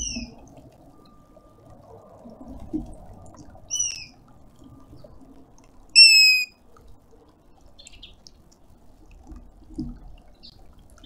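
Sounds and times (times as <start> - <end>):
hornbill plaintive whistles: 3.7 - 4.1, 6.0 - 6.5.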